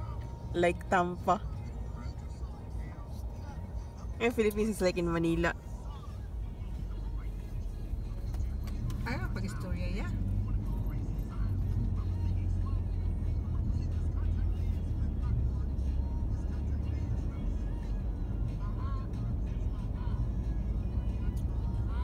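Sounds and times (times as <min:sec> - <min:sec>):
road and engine rumble in car: 0:00.0 - 0:22.0.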